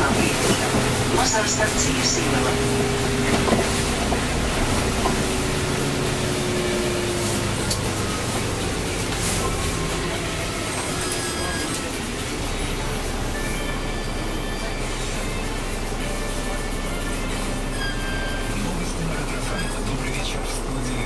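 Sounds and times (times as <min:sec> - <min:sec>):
bus engine and road rumble: 0:00.0 - 0:21.0.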